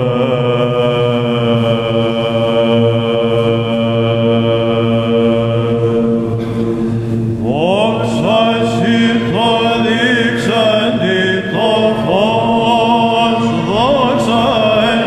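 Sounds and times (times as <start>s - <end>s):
low vocal drone: 0.0s - 15.0s
male voices chanting: 7.4s - 15.0s.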